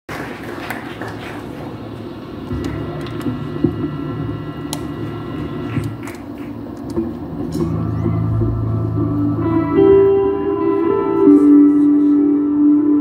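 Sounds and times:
amplifier hum: 1.0 - 13.0
electric guitar tones ringing: 2.2 - 6.3, 6.9 - 13.0.

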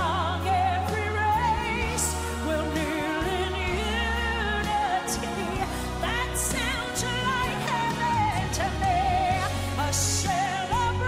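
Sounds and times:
bass notes: 0.0 - 11.0
woman singing gospel ballad: 0.0 - 11.0.

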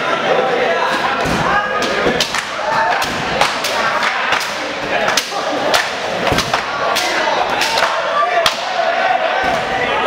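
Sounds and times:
voices of group: 0.0 - 10.0.

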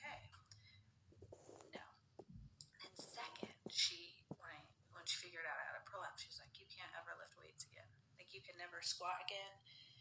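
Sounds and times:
woman speaking softly: 0.0 - 0.5, 1.7 - 2.0, 2.6 - 9.6.

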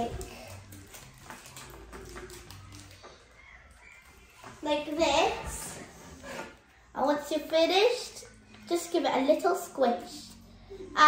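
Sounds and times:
sticky tape being handled: 0.0 - 3.3
plastic bag crinkling: 0.0 - 4.4
faint voices: 0.0 - 9.3.

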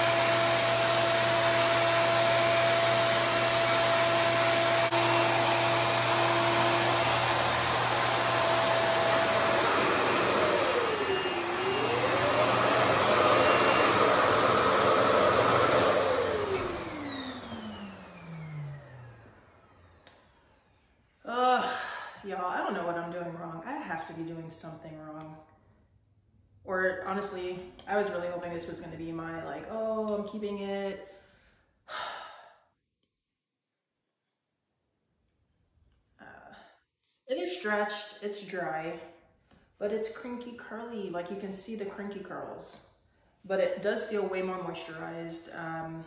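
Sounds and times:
hair dryer motor whining: 0.0 - 20.8.

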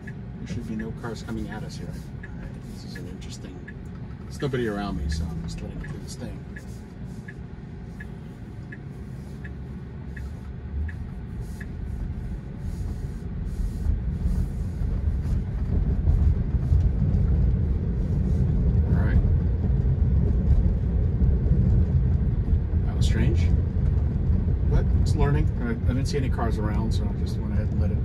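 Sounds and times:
road and tyre rumble: 0.0 - 28.0
turn signal ticking: 0.0 - 28.0.

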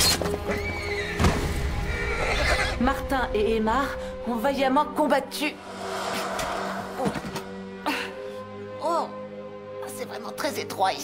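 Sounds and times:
dramatic film music: 0.0 - 11.0
horse neighing: 1.9 - 2.8.

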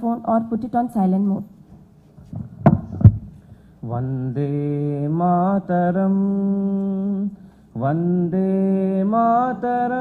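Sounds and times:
microphone handling thumps: 1.7 - 3.6.

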